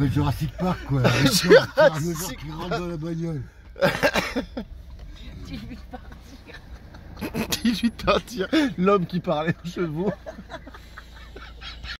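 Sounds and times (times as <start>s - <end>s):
low steady rumble: 0.0s - 12.0s
person laughing: 1.0s - 2.4s, 3.8s - 4.6s, 5.9s - 8.8s.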